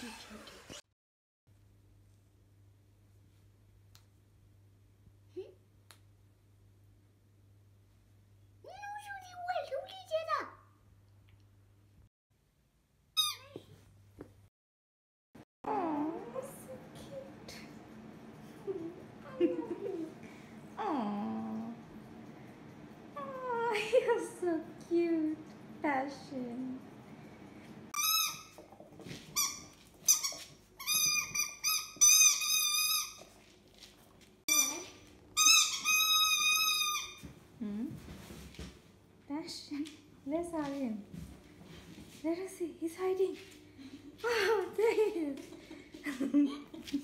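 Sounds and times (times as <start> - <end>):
squeaky dog toy squeaking: 13.2 - 13.6, 28.0 - 28.6, 29.4 - 33.3, 34.5 - 37.2.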